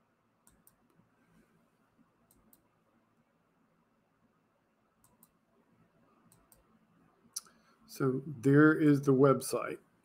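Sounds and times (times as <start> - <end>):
computer mouse clicks: 0.4 - 1.0, 2.3 - 2.7, 5.0 - 5.4, 6.3 - 6.7.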